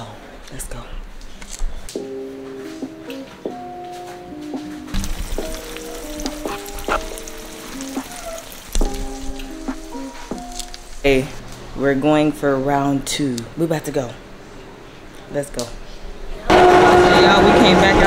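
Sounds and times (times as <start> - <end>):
background music melody: 1.9 - 12.4
eggs sizzling and popping: 4.9 - 11.1.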